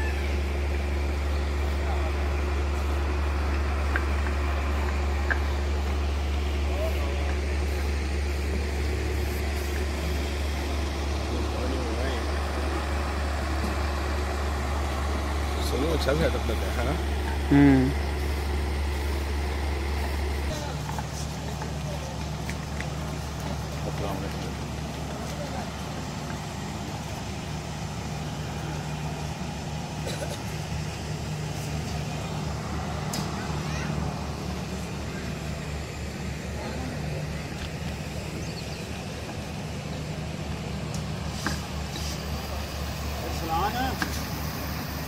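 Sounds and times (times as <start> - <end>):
low mechanical hum: 0.0 - 45.0.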